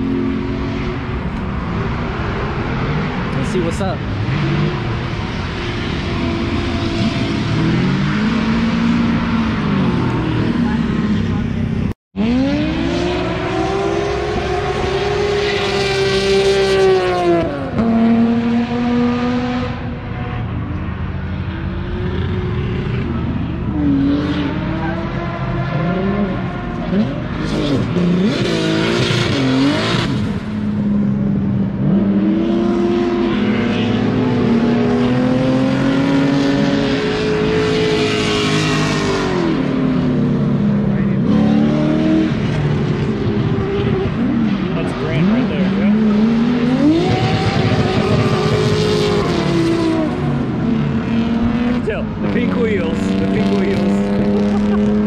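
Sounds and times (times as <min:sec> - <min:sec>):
car engines revving hard: 0:00.0 - 0:55.0.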